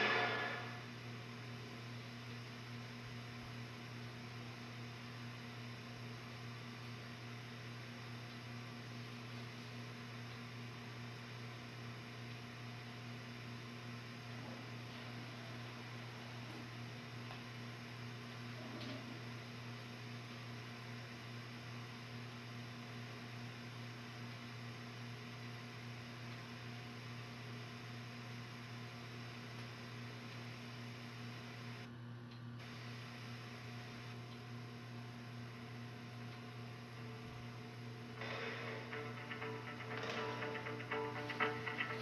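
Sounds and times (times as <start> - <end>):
tape hum and hiss: 0.0 - 42.0
music: 38.2 - 42.0.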